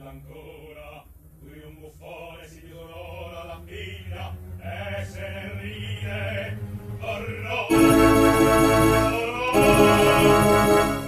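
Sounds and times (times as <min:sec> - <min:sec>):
operatic singing: 0:00.0 - 0:11.0
sustained low accompaniment: 0:00.0 - 0:11.0.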